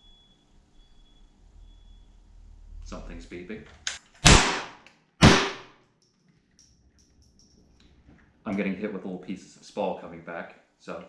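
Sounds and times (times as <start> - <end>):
rifle shots into steel box: 4.2 - 5.7.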